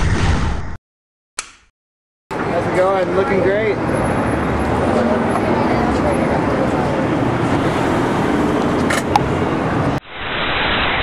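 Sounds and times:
street traffic noise: 0:02.3 - 0:10.0.

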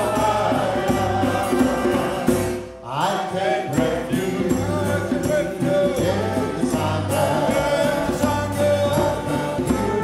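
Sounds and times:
choir and band chant song: 0:00.0 - 0:10.0.

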